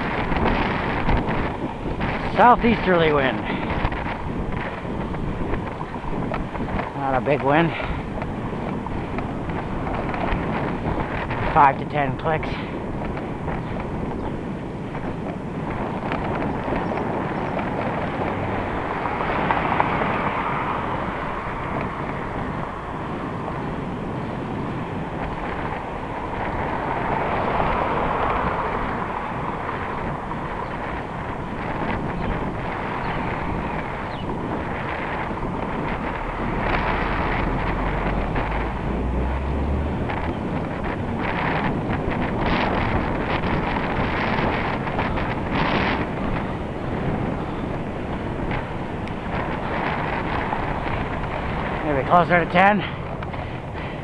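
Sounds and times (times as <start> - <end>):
deep rumble: 0.0 - 54.0
passing street traffic: 0.0 - 54.0
wind on microphone: 0.0 - 54.0.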